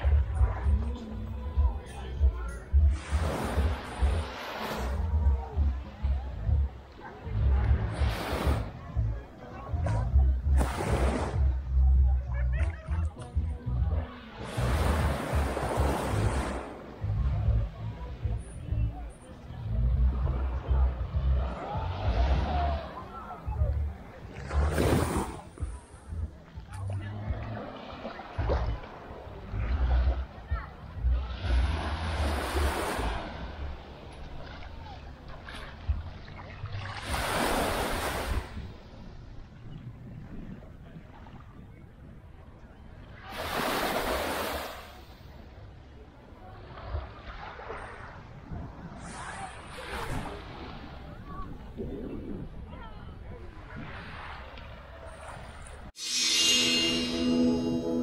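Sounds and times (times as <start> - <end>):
background music with steady beat: 0.0 - 4.4, 56.0 - 58.0
wind rumble on microphone: 0.0 - 44.4, 45.0 - 56.0
small waves breaking on sand: 31.3 - 39.1, 43.2 - 45.4, 46.4 - 51.6.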